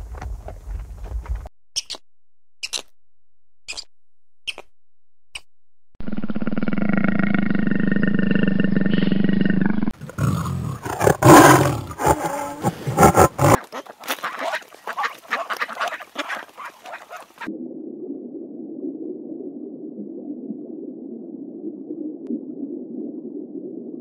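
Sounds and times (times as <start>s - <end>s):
big cat purring: 6.0s - 13.6s
big cats growling and snarling: 9.9s - 13.6s.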